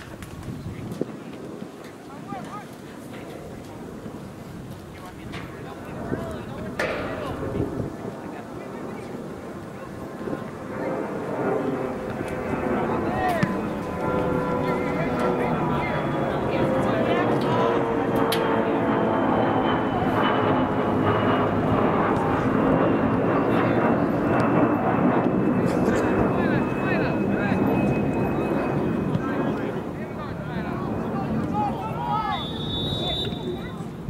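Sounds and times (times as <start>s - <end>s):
aircraft engine drone: 0.0s - 34.0s
field noise: 0.0s - 34.0s.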